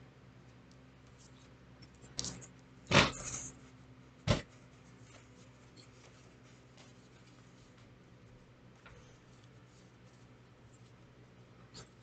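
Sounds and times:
low steady hum: 0:00.0 - 0:12.0
paper rustling: 0:04.5 - 0:11.0.

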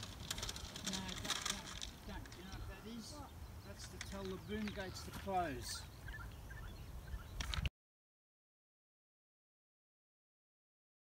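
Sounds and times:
wind rumbling on microphone: 0:00.0 - 0:07.7
faint bird calls: 0:02.4 - 0:07.7.

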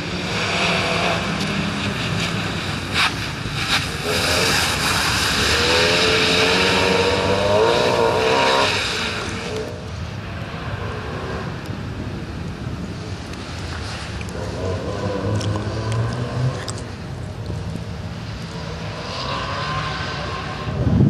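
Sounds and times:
tyres on wet gravel: 0:00.0 - 0:09.7, 0:13.2 - 0:18.6
rally car engine pulling hard: 0:00.0 - 0:09.8.

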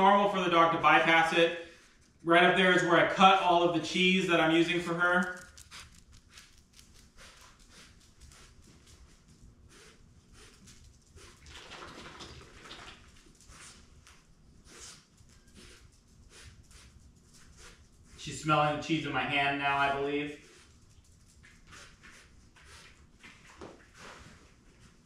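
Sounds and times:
puppy ticks and scuffles: 0:03.9 - 0:11.7, 0:12.3 - 0:18.3, 0:19.8 - 0:25.0.

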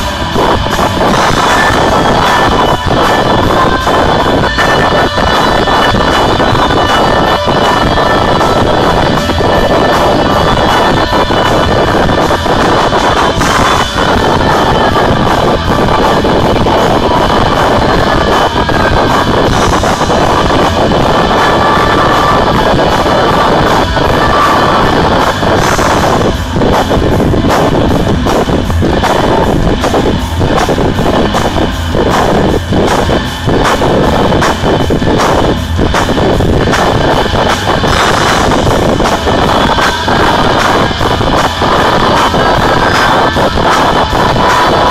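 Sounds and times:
distorted electric guitar: 0:00.0 - 0:44.9
loud rock band: 0:00.0 - 0:44.9.

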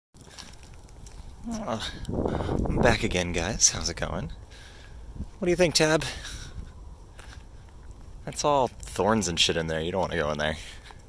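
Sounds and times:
wind rumble on microphone: 0:00.2 - 0:04.4, 0:05.0 - 0:09.3.

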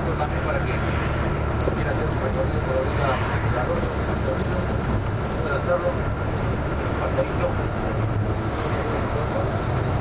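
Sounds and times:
vehicle engine and road rumble: 0:00.0 - 0:10.0.

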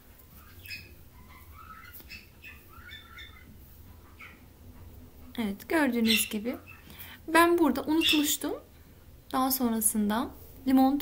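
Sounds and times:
low steady hum: 0:00.0 - 0:11.0
small bird chirping: 0:00.2 - 0:04.5, 0:05.9 - 0:07.0, 0:07.8 - 0:08.4.

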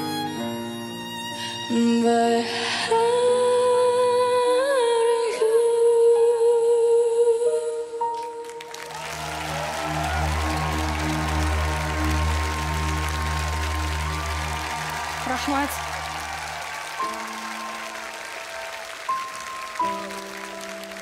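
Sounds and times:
audience applauding: 0:08.4 - 0:21.0
low backing music chord: 0:09.0 - 0:16.4.

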